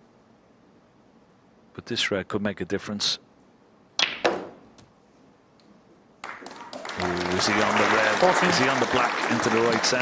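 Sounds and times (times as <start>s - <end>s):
ball knocking ball: 4.0s - 4.6s
audience applauding: 6.2s - 10.0s.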